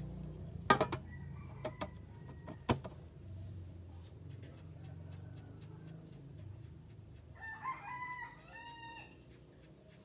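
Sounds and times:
rooster crowing: 1.0s - 2.8s, 7.4s - 9.2s.

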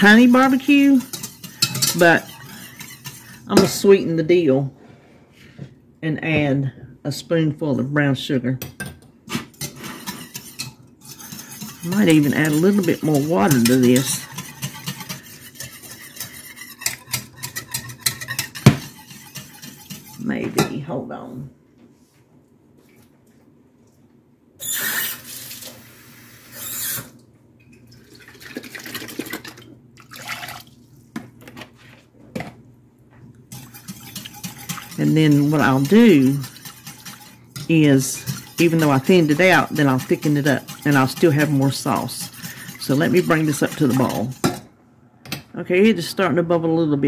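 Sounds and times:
spoon and whisk scraping saucepan: 0.0s - 4.6s, 9.3s - 20.9s, 33.4s - 44.7s.

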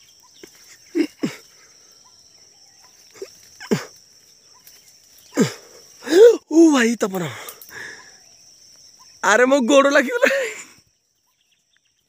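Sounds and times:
high insect drone: 0.0s - 12.0s.

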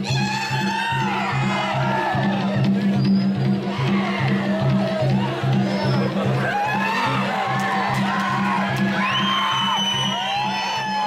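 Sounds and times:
barrel drum beating rhythm: 0.0s - 11.0s
high whoops and calls: 5.9s - 11.0s.

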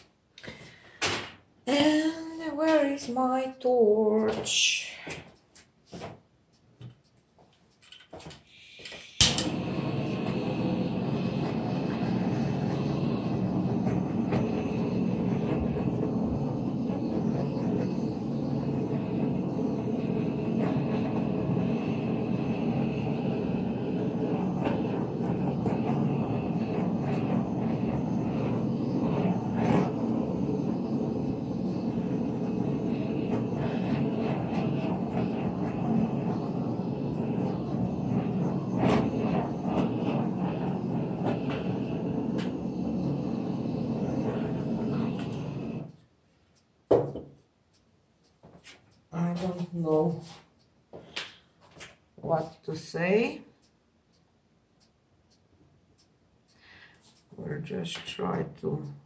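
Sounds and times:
hot-air blower running: 8.8s - 46.0s.

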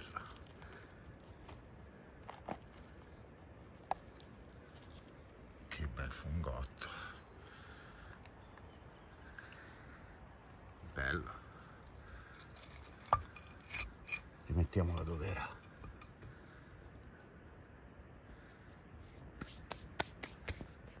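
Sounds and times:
rubbing and scraping in soil: 0.0s - 7.4s, 10.4s - 15.6s, 19.0s - 21.0s.

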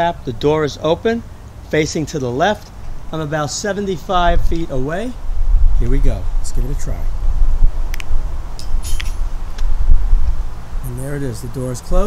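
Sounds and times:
wind rumbling on microphone: 4.1s - 12.0s.

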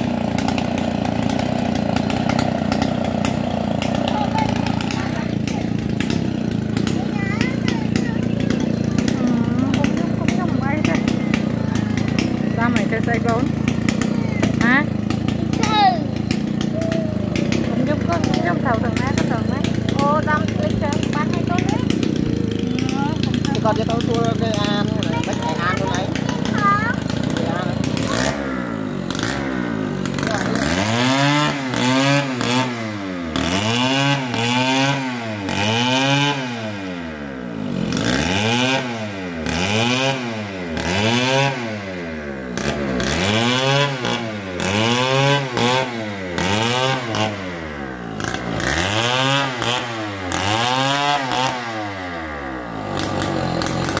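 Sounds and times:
chainsaw sawing a log: 0.0s - 54.0s.

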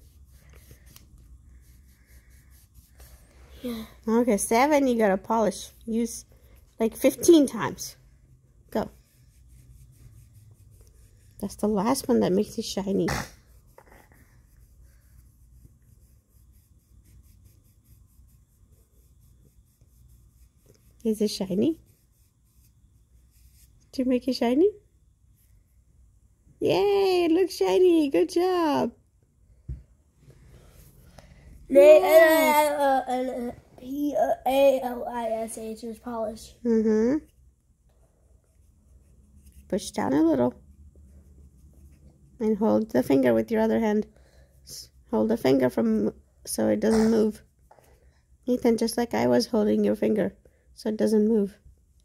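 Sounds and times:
nail buffer rubbing a fingernail: 8.8s - 23.8s.

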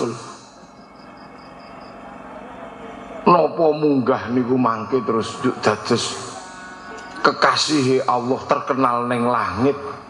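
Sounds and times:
man preaching over pa system: 0.0s - 0.4s, 3.3s - 6.5s, 7.2s - 10.0s
amplified hall background noise: 0.0s - 10.0s.

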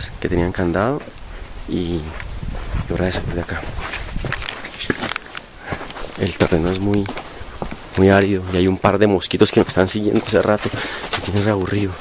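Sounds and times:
footsteps on stony dirt path: 0.6s - 12.0s
loose stones clicking: 4.2s - 8.7s.

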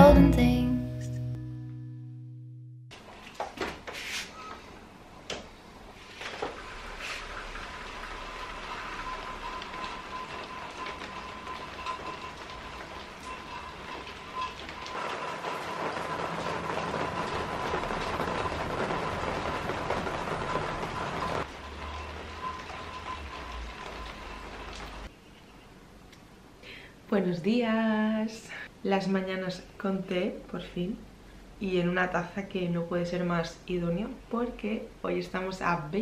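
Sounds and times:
steady rain falling: 5.8s - 25.1s.

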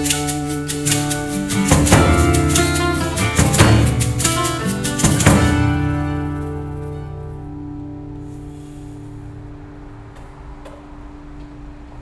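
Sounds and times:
acoustic guitar chord ringing: 0.0s - 10.4s
low room rumble: 0.0s - 12.0s.

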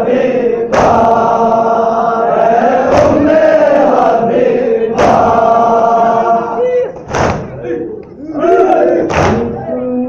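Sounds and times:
men chanting in unison: 0.0s - 9.8s
hands slapping chests: 5.0s - 5.4s, 7.0s - 7.6s, 9.1s - 9.5s.

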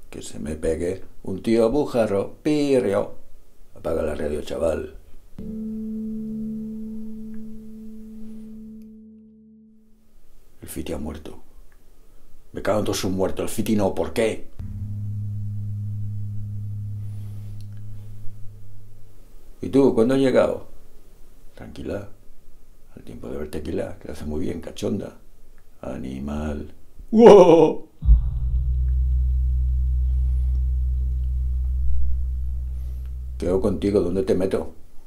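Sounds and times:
low electronic hum: 5.4s - 10.0s, 14.6s - 19.6s, 28.0s - 34.3s
low rumbling drone: 14.6s - 19.4s, 28.0s - 34.2s.

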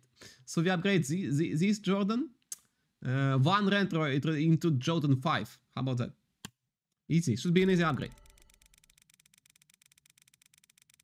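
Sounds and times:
rapid even ticking: 8.1s - 11.0s.

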